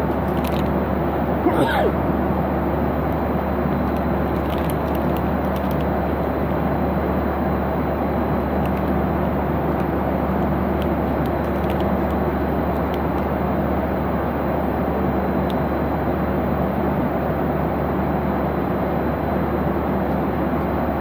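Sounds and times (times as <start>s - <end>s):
airliner cabin engine rush: 0.0s - 15.4s
constant low hum: 0.0s - 21.0s.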